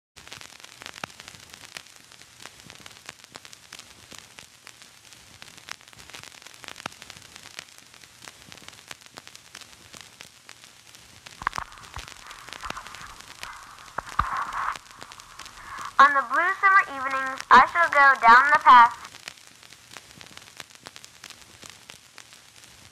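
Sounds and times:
hiss with crackles and pops: 0.2 - 22.9
hazy noise: 11.4 - 19.1.

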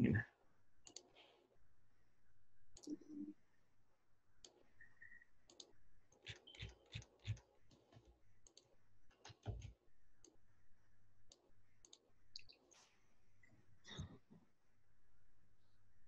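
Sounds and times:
mouse and keyboard clicks: 5.5 - 9.7.

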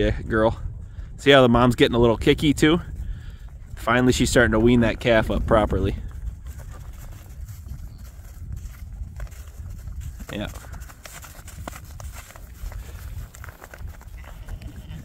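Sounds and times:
wind rumble on microphone: 0.0 - 15.0
footsteps crunching on snow: 5.3 - 15.0.

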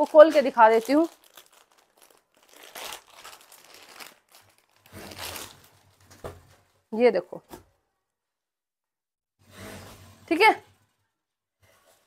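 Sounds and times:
plastic packet crinkling: 0.0 - 6.3
cloth rustling: 0.0 - 6.7.

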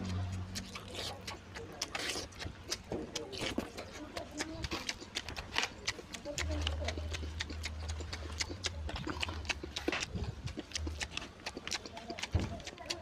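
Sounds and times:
chewing with lip smacks: 0.0 - 13.0.

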